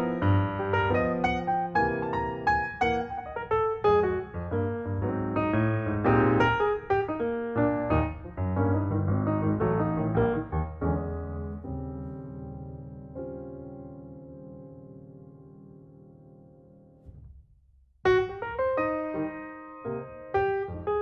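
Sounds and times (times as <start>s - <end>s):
piano music: 0.0s - 17.1s, 18.0s - 21.0s.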